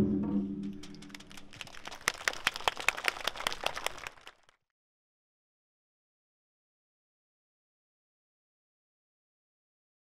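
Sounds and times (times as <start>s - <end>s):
audience applauding: 0.8s - 4.6s.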